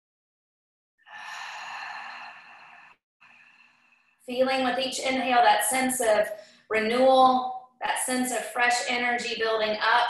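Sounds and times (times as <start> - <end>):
woman sighing: 1.1 - 2.8.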